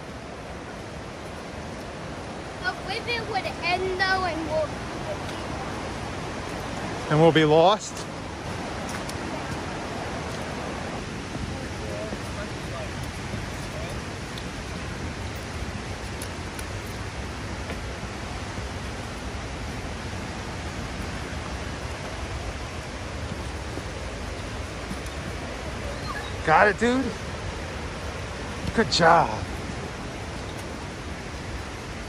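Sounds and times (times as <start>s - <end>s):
rush of flowing water: 0.0s - 32.0s.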